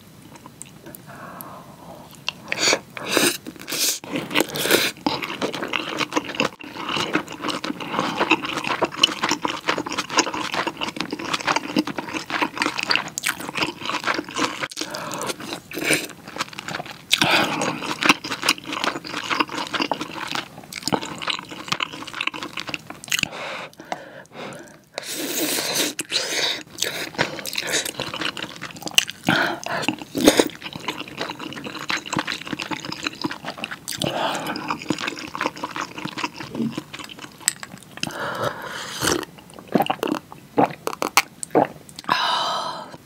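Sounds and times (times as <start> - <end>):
wet chewing with crackles: 2.0 - 42.1.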